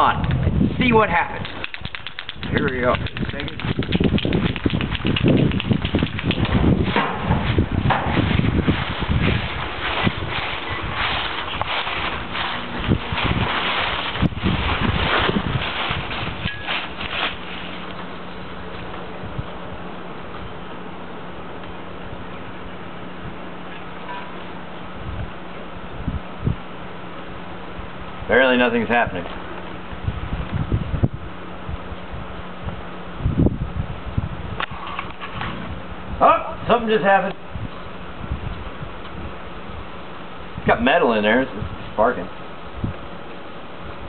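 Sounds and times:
footsteps through dry leaves: 7.0s - 18.2s.

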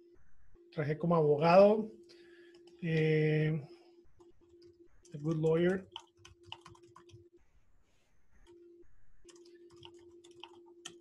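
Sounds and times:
low steady hum: 0.0s - 11.0s
typing on keyboard: 4.2s - 7.3s, 9.2s - 11.0s.

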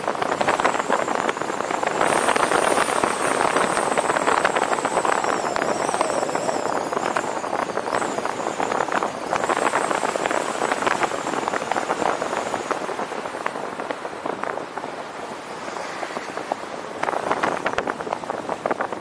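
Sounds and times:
faint high whine: 0.0s - 14.2s
wind and tyre noise: 0.0s - 19.0s
wind buffeting microphone: 0.0s - 19.0s.

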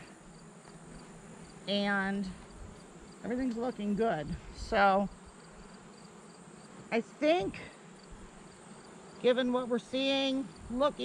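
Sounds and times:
high insect trill: 0.0s - 7.0s
honey bees buzzing: 0.0s - 11.0s.

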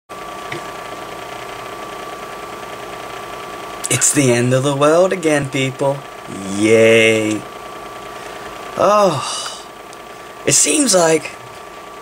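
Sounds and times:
machine hum with high tone: 0.1s - 12.0s.

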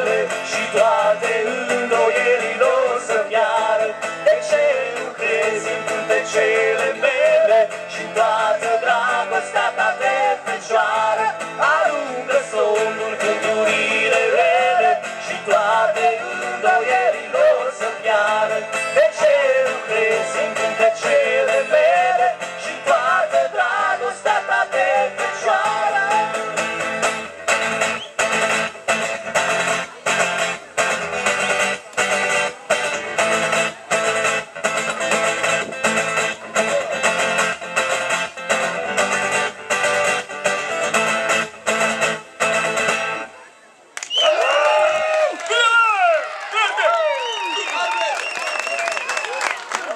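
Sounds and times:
guitars strumming: 0.0s - 43.3s.

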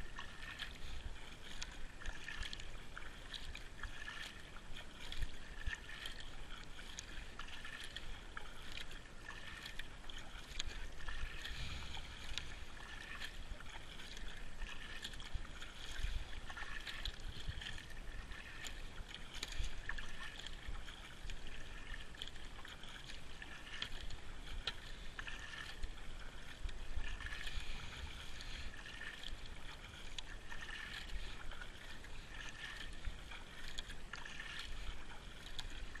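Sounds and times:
kayak paddle strokes in water: 0.0s - 36.0s
water dripping from paddle: 0.0s - 36.0s.

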